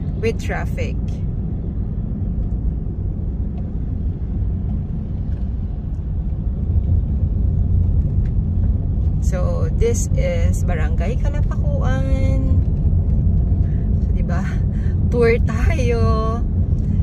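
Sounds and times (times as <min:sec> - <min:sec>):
road and engine rumble in car: 0:00.0 - 0:17.0.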